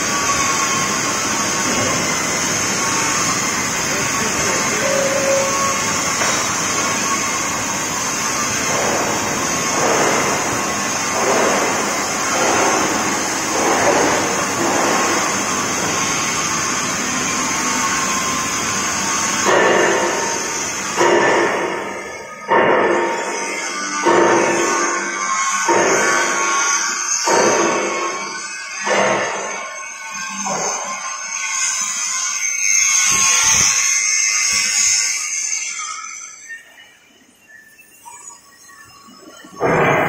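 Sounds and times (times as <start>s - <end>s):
drilling machine high-pitched whine: 0.0s - 40.0s
machine-shop noise: 0.0s - 40.0s.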